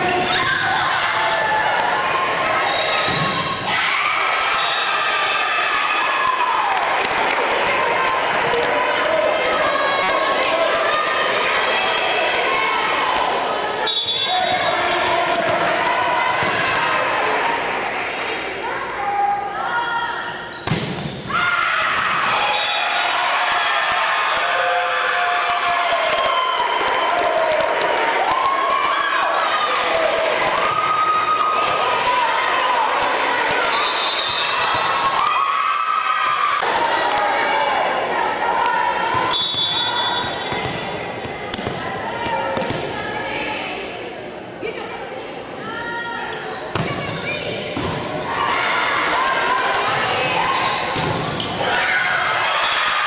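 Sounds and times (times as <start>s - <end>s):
volleyball smack: 20.6s - 21.2s.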